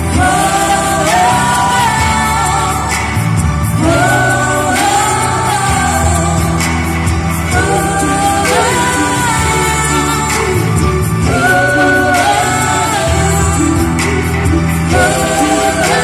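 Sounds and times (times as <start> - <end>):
women singing: 0.0 - 16.0.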